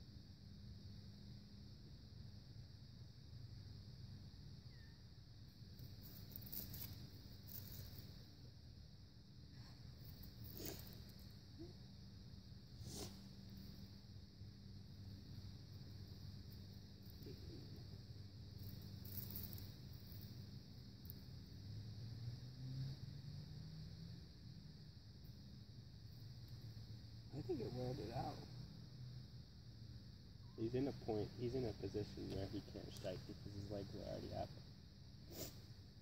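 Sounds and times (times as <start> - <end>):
faint steady hiss: 0.0 - 36.0.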